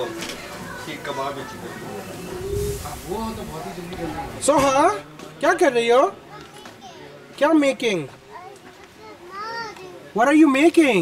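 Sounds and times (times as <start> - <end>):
faint steady background noise: 0.0 - 11.0.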